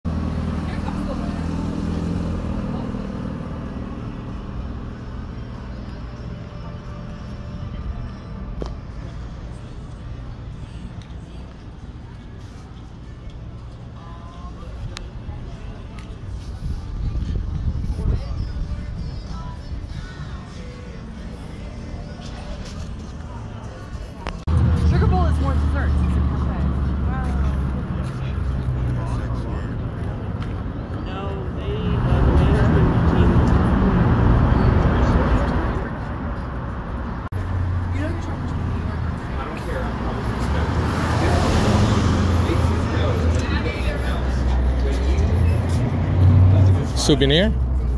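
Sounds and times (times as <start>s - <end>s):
people talking in background: 0.1s - 47.9s
traffic noise: 0.1s - 47.9s
vehicle engine humming: 0.1s - 47.9s
voices in background: 0.3s - 47.9s.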